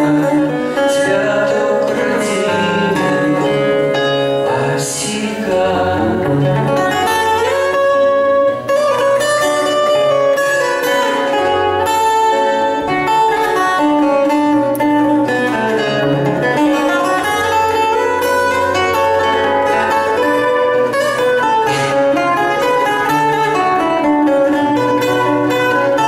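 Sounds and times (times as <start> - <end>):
acoustic guitars playing: 0.0 - 26.0.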